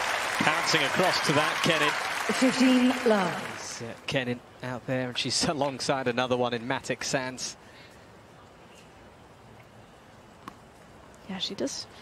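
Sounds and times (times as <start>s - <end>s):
faint stadium ambience: 0.0s - 12.0s.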